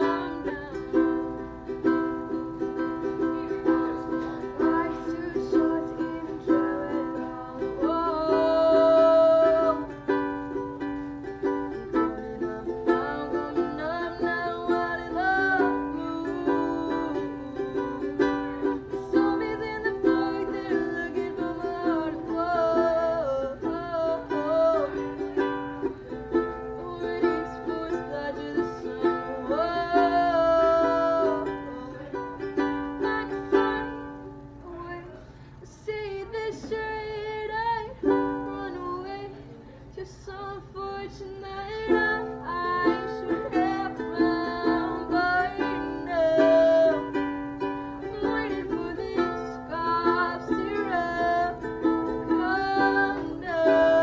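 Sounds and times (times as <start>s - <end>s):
ukulele strumming chords: 0.0s - 39.5s, 40.4s - 54.0s
woman singing: 0.0s - 54.0s.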